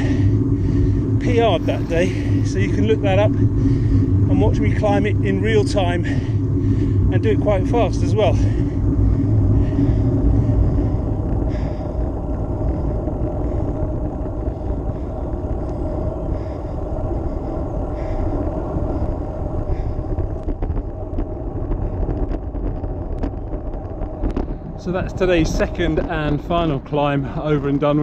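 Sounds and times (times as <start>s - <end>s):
bike tyres on tarmac: 0.0s - 28.0s
wind on camera microphone: 0.0s - 28.0s.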